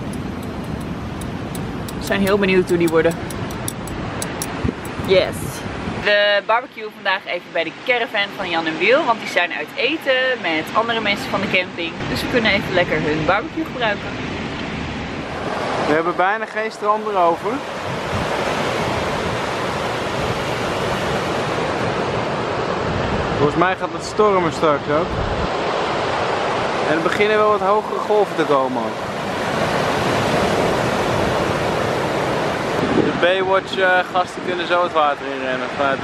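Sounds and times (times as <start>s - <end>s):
wind rumbling on microphone: 0.0s - 6.2s, 11.0s - 16.1s, 17.3s - 28.3s, 28.9s - 34.6s
surf breaking on a beach: 0.0s - 36.0s.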